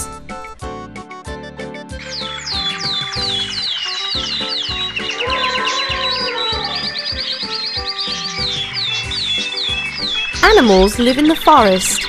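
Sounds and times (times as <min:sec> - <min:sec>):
high falling chirps: 0:02.0 - 0:11.4.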